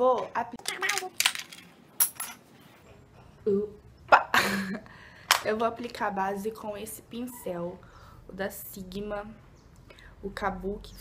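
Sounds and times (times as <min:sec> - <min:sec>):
small hard objects clinking: 0:00.6 - 0:02.4.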